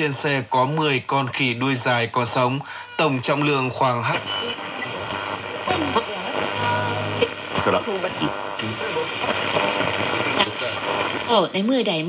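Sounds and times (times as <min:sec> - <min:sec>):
broadcast voices on radio: 0:00.0 - 0:12.0
radio static between stations: 0:00.0 - 0:12.0.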